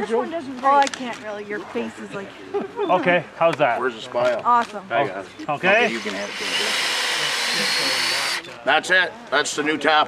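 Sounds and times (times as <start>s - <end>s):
cordless drill boring into wood: 5.7s - 8.5s.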